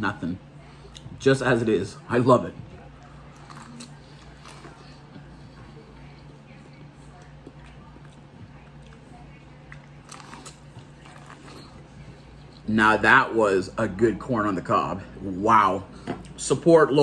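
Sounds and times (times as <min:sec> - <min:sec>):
chewing corn on the cob: 0:02.9 - 0:12.7.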